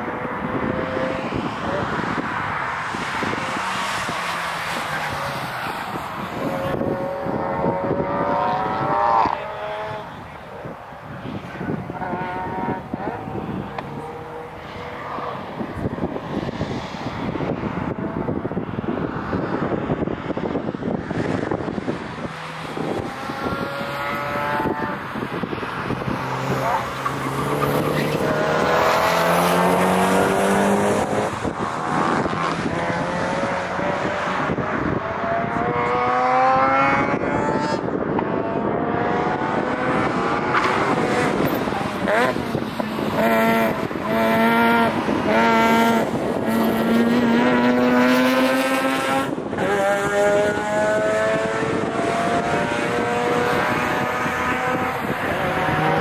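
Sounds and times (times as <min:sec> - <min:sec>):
racing car engines revving: 0:00.0 - 0:56.0.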